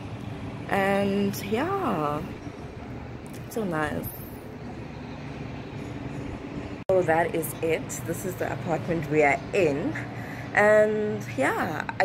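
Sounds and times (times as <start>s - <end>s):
distant city traffic hum: 0.0s - 12.0s.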